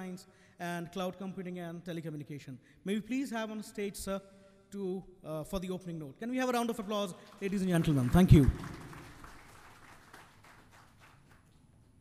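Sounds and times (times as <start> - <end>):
audience hand claps: 7.2 - 12.0.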